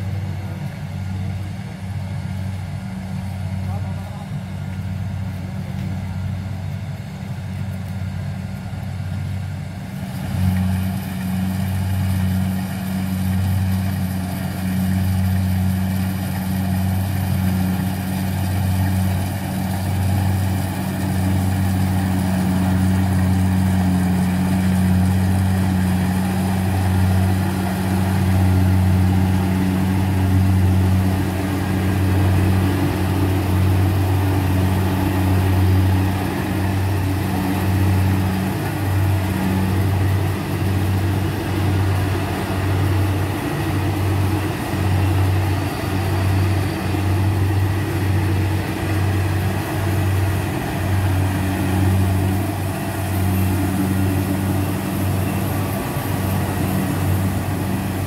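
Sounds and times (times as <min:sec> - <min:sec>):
harvesting machine engine drone: 0:00.0 - 0:58.0.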